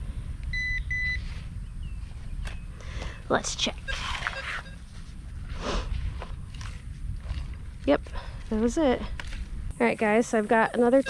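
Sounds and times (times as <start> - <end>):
short electronic beeps: 0.5 - 1.2, 3.8 - 4.9.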